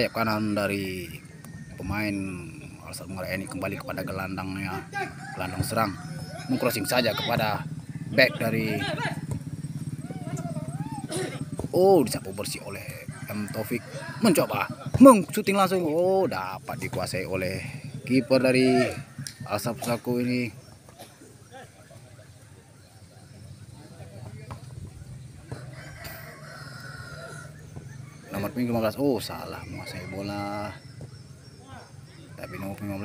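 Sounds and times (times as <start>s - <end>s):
rooster crowing: 4.6s - 9.0s, 12.2s - 15.0s, 25.5s - 30.8s
small engine idling: 5.0s - 15.4s.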